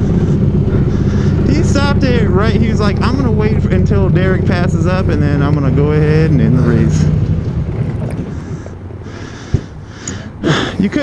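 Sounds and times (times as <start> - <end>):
go-kart engines idling: 0.0 - 11.0.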